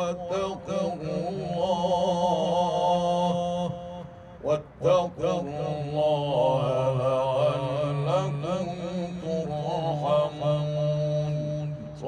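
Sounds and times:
man chanting into microphone: 0:00.0 - 0:12.0.

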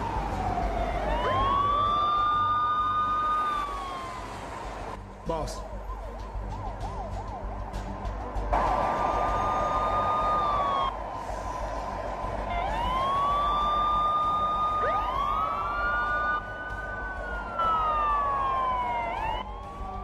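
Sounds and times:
police sirens wailing: 0:00.0 - 0:20.0.

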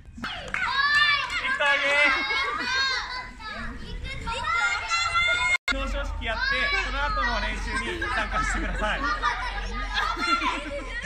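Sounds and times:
children shouting and chattering: 0:00.1 - 0:11.0.

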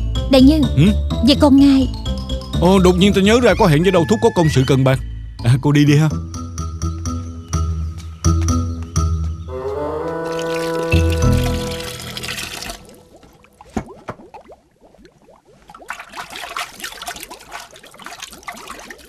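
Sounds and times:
water bubbling and gurgling: 0:10.3 - 0:19.0.

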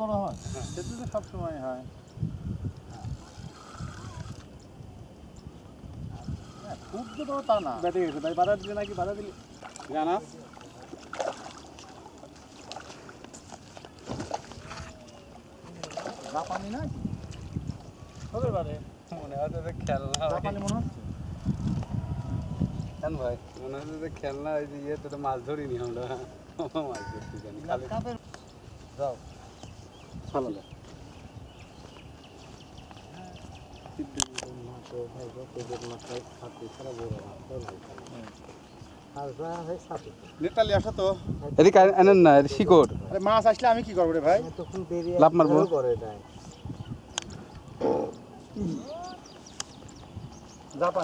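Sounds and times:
people talking indistinctly: 0:00.0 - 0:02.0, 0:06.0 - 0:12.1, 0:14.8 - 0:51.0.

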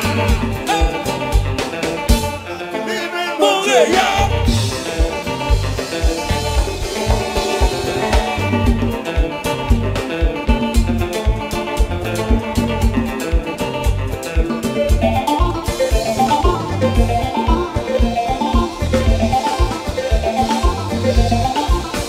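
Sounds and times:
drum kit and bass dance beat: 0:03.9 - 0:22.0
electric guitar note runs: 0:04.5 - 0:22.0.

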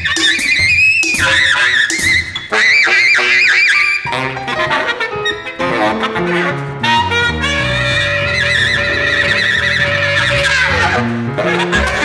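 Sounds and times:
jazz ensemble playing: 0:00.0 - 0:12.0.

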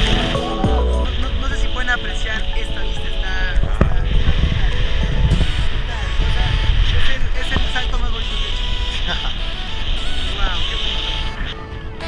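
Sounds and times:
music playing: 0:00.0 - 0:12.0
wind buffeting microphone: 0:00.0 - 0:12.0.

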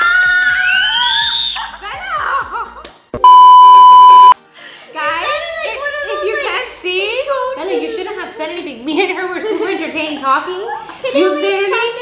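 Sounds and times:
test-tone beep: 0:03.2 - 0:04.4.

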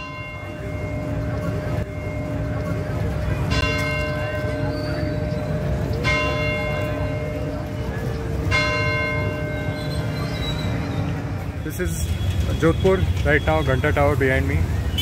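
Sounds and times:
clock tower bell striking: 0:00.0 - 0:10.4
street noise: 0:00.0 - 0:15.0.

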